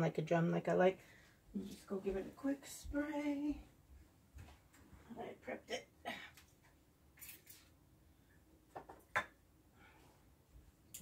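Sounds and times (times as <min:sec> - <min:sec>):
soft hiss: 0:01.0 - 0:05.2.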